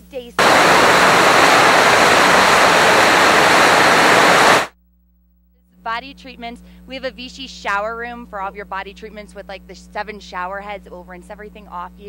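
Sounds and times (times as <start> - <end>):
loud static hiss: 0.4 - 4.7.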